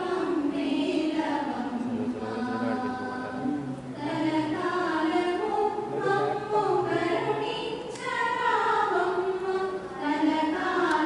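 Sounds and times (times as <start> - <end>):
group singing devotional song: 0.0 - 11.0.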